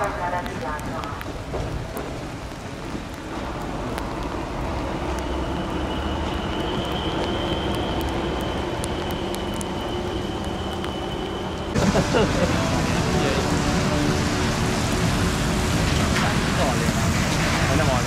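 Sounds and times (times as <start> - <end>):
steady rain hiss: 0.0 - 18.0.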